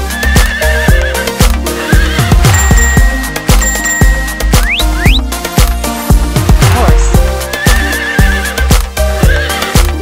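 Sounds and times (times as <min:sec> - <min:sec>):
horse whinny sound effect: 0:07.5 - 0:08.6.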